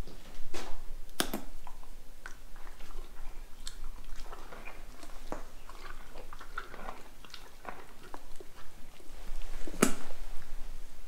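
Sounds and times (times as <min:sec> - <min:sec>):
carrot snapping: 0:01.1 - 0:01.5
horse crunching carrot: 0:01.5 - 0:10.3.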